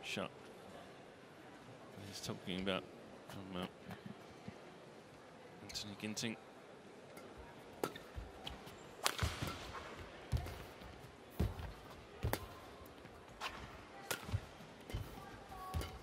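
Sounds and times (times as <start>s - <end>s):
rackets striking shuttlecock: 7.2s - 10.7s, 13.5s - 16.0s.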